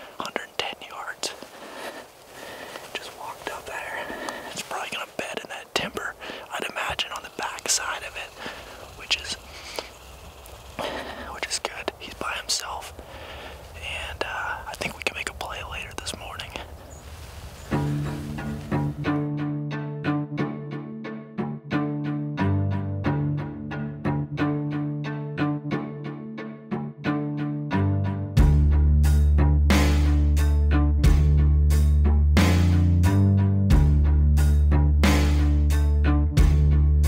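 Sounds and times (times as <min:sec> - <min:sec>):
people whispering: 0:00.0 - 0:16.9
low string music: 0:00.0 - 0:37.0
small clicks and rustles: 0:06.5 - 0:10.8.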